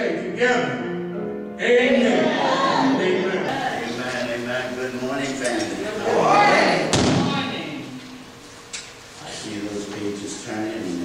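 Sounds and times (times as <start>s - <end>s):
sharp thump: 6.9s - 7.4s.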